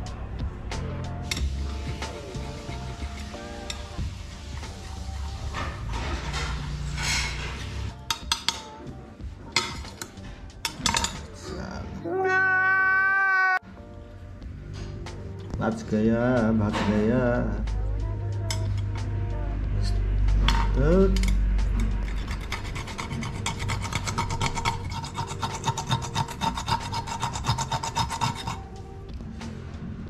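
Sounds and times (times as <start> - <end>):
background music: 0.0 - 30.0.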